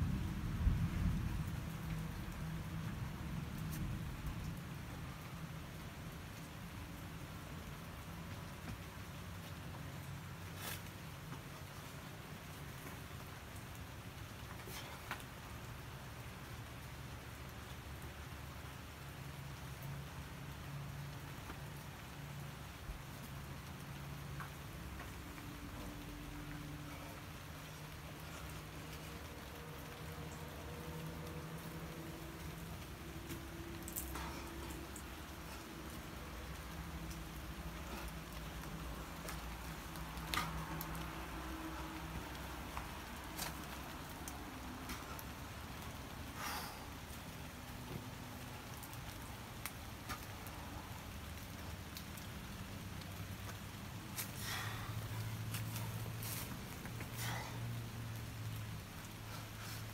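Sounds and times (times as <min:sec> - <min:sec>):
steady rain falling: 0:00.0 - 0:59.9.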